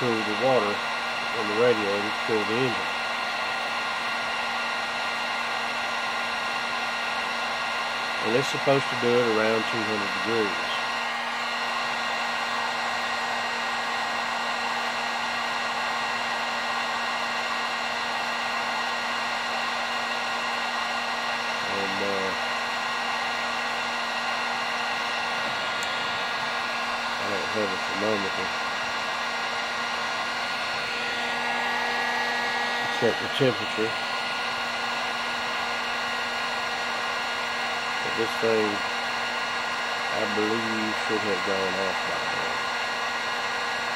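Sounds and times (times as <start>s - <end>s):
heat gun blowing hot air: 0.0s - 43.9s.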